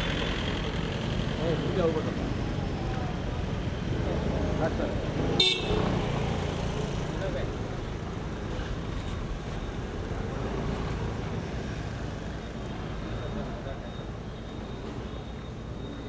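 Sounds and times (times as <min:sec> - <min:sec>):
voices of people on street: 0:00.0 - 0:16.0.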